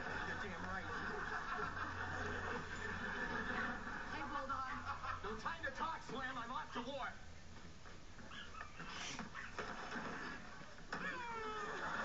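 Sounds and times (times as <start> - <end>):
high whoops and squealing cries: 11.0 - 12.0.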